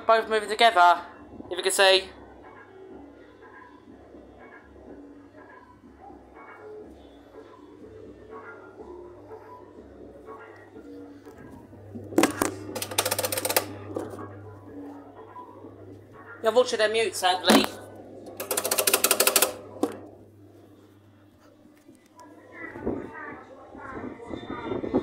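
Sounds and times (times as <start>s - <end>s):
faint background music: 0.0s - 25.0s.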